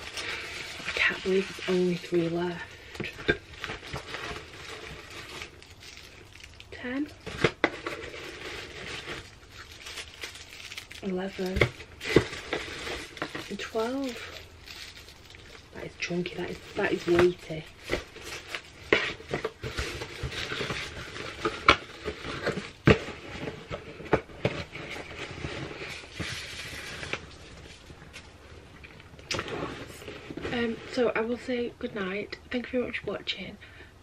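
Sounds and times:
packaging rustling and crinkling: 0.0s - 31.2s.

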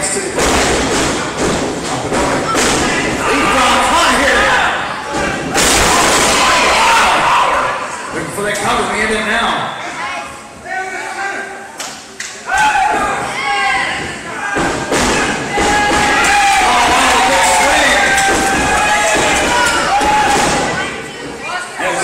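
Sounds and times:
loud shouting voices: 2.4s - 8.1s, 9.8s - 11.8s, 12.4s - 22.0s.

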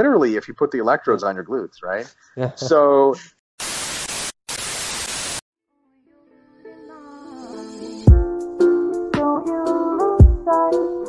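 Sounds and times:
television static hiss: 3.6s - 5.4s.

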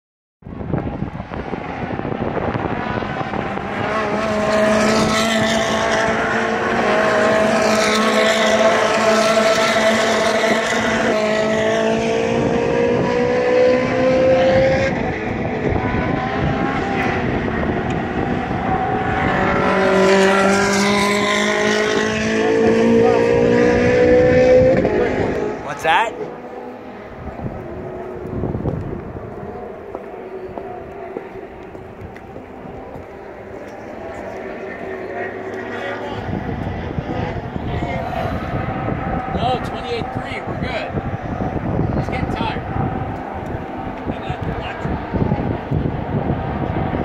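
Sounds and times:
race car engines passing: 0.5s - 47.0s.

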